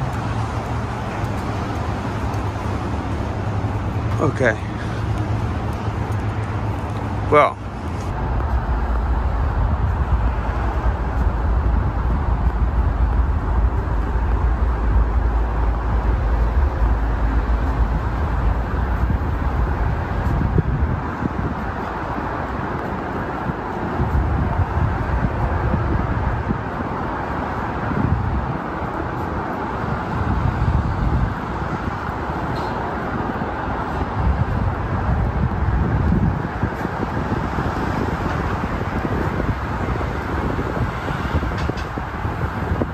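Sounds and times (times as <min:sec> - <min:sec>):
low rumbling: 0:00.0 - 0:21.7
road traffic passing cars: 0:00.0 - 0:42.9.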